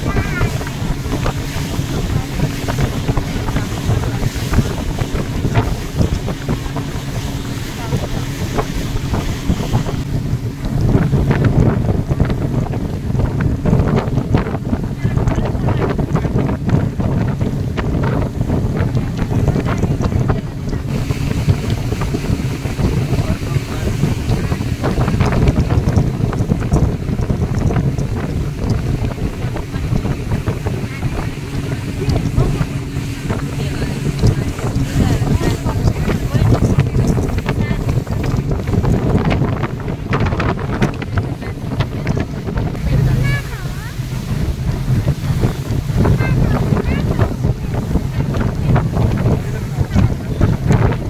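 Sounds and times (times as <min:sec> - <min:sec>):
boat engine droning: 0:00.0 - 0:51.0
wind buffeting microphone: 0:00.0 - 0:51.0.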